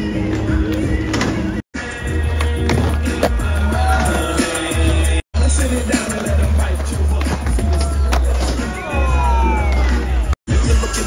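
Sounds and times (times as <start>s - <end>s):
music with heavy bass: 0.0s - 11.0s
skateboard wheels rolling on asphalt: 5.4s - 8.9s.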